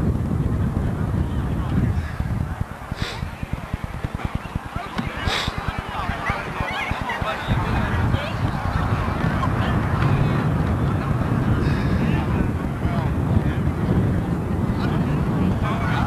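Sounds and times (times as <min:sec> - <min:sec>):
people talking indistinctly: 0:00.0 - 0:16.0
wind buffeting microphone: 0:00.0 - 0:16.0.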